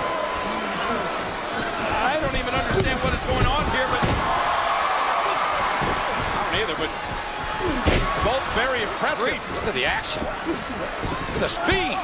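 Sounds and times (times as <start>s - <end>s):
arena crowd noise: 0.0s - 12.0s
wrestlers slamming on mat: 2.6s - 4.8s, 5.5s - 8.6s.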